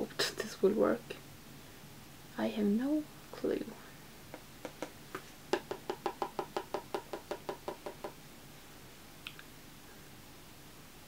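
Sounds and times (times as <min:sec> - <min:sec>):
brush tapping palette: 0:04.3 - 0:08.2.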